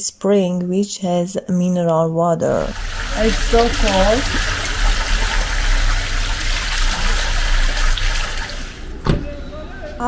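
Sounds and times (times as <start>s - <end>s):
water running from pipe spout: 2.6s - 8.9s.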